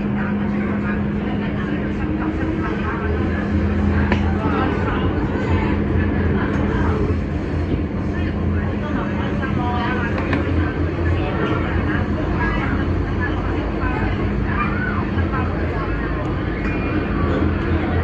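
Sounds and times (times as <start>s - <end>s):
passengers chattering: 0.0s - 18.0s
train motor hum: 0.0s - 18.0s.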